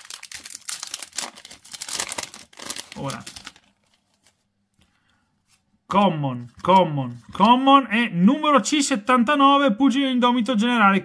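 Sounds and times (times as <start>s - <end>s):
man talking: 3.0s - 3.3s, 5.9s - 11.0s.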